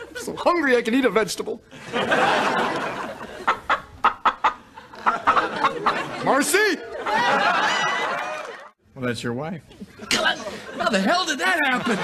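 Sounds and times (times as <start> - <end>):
studio audience laughter: 1.7 - 8.7, 9.8 - 12.0.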